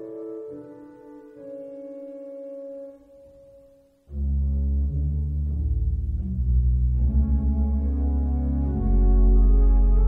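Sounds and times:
pipe organ chords: 0.0s - 10.0s.

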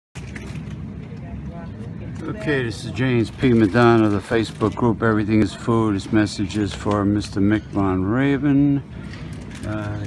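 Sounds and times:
low steady hum: 0.2s - 10.0s
faint voices: 0.5s - 10.0s.

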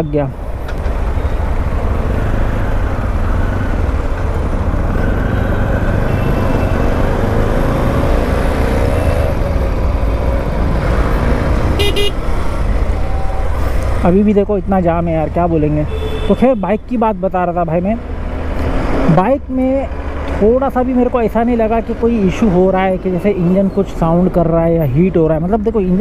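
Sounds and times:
road noise: 0.0s - 26.0s
vehicle horn honking: 11.8s - 12.2s, 15.9s - 16.6s.

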